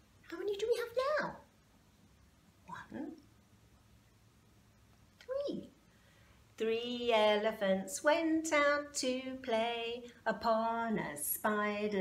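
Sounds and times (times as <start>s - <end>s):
woman speaking softly: 0.2s - 1.5s, 2.7s - 3.3s, 5.2s - 5.8s.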